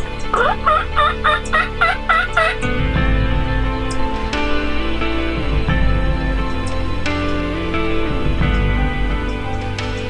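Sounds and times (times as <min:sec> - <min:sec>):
background music: 0:00.0 - 0:10.0
wild turkey calling: 0:00.3 - 0:02.6.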